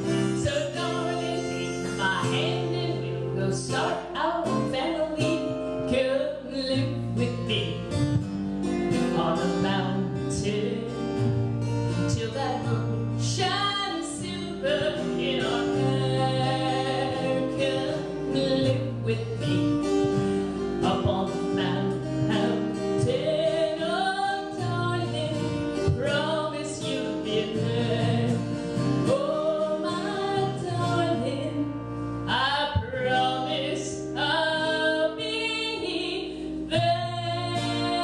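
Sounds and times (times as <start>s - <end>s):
strummed acoustic guitar: 0.0s - 38.0s
woman singing: 0.0s - 38.0s.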